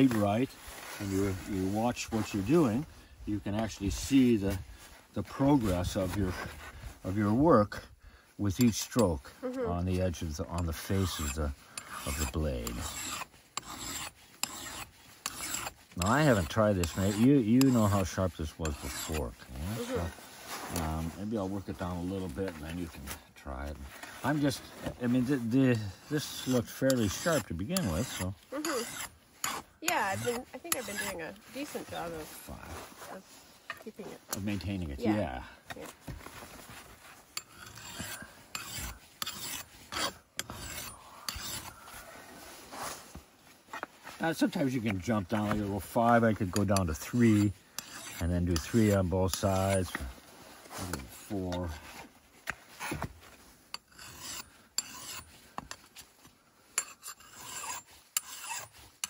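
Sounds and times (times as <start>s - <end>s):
file rasping on steel edge: 10.2s - 20.1s, 25.7s - 31.7s, 37.4s - 41.8s, 45.3s - 50.0s, 53.7s - 55.9s, 56.8s - 59.0s.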